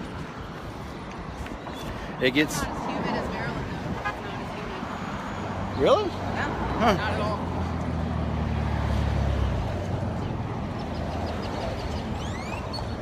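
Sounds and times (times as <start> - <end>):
steady road noise: 0.0 - 13.0
vehicle passing close by: 2.2 - 13.0.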